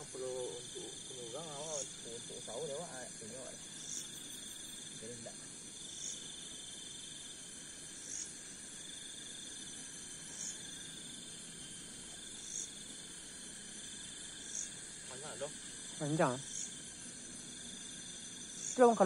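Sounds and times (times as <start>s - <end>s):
crickets buzzing: 0.0s - 19.0s
pulsing insect trill: 0.0s - 19.0s.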